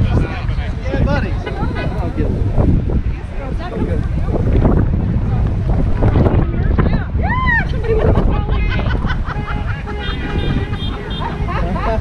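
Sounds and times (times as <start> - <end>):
road traffic passing: 0.0 - 12.0
wind buffeting microphone: 0.0 - 12.0.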